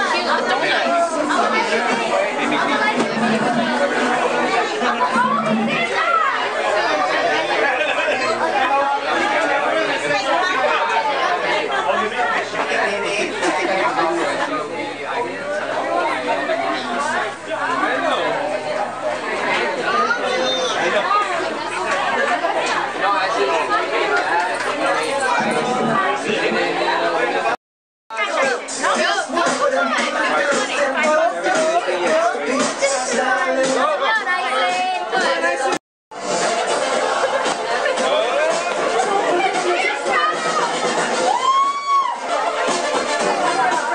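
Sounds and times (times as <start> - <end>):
crowd chatting: 0.0 - 43.9.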